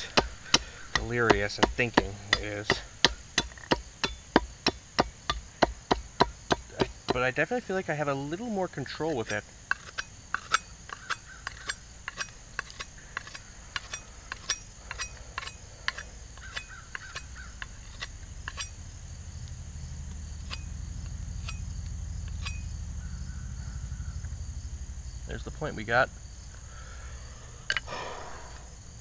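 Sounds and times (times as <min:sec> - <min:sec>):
knife cutting wooden stick: 0:00.0 - 0:07.2, 0:09.2 - 0:18.8, 0:20.4 - 0:20.8, 0:21.4 - 0:21.6
crickets droning: 0:00.0 - 0:29.0.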